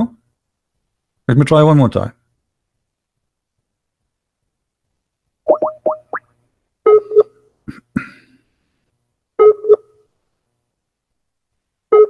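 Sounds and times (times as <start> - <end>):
rising bloop tones: 5.5 - 6.3.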